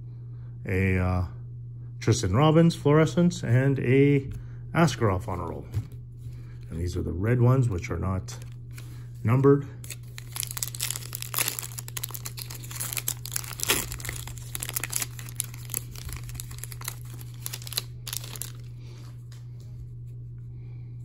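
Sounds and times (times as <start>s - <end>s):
foil wrapper tearing and crinkling: 9.8s - 19.0s.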